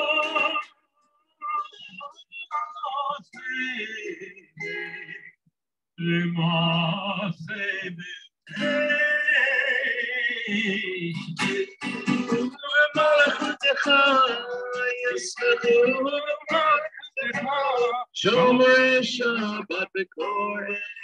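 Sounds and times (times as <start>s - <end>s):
guitar accompaniment: 0.0s - 0.8s, 1.5s - 5.4s, 6.5s - 21.0s
man singing: 0.0s - 5.4s, 6.0s - 21.0s.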